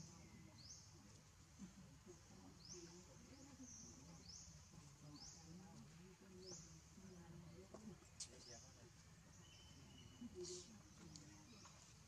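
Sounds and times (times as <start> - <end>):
faint forest ambience: 0.0 - 12.0.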